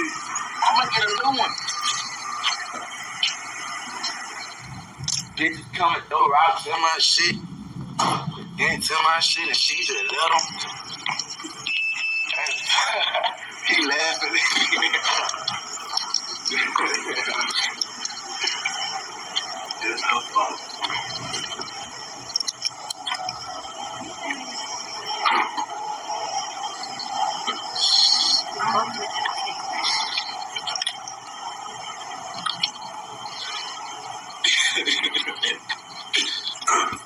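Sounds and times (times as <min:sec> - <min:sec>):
indistinct talking: 0:00.0 - 0:37.0.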